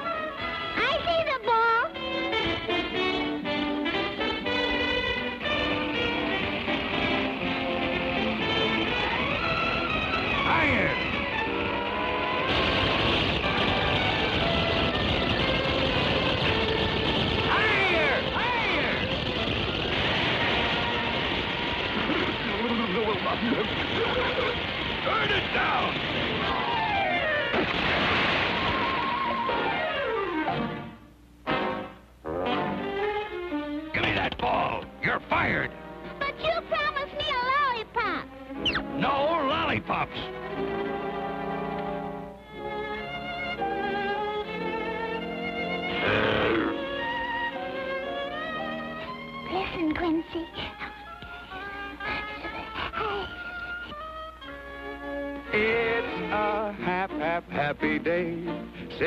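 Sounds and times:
steady noisy rush: 0:05.4 - 0:29.9
orchestral cartoon score: 0:28.7 - 0:58.7
comic sound effects: 0:46.0 - 0:46.9
gliding vocal cries: 0:46.0 - 0:47.0.

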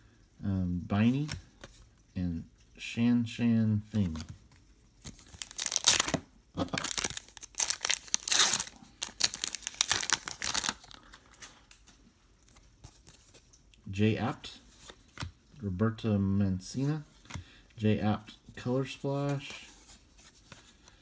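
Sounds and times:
wrapper tearing and crinkling: 0:05.2 - 0:11.1.

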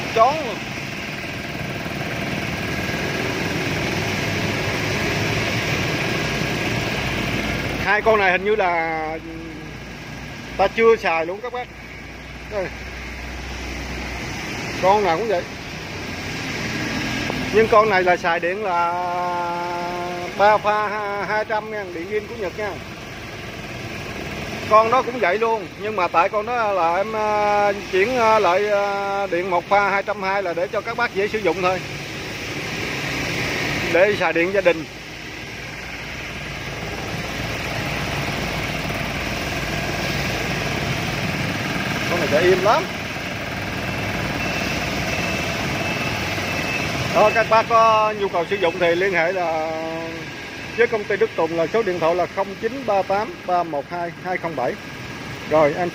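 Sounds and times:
air compressor humming: 0:00.0 - 0:55.9.

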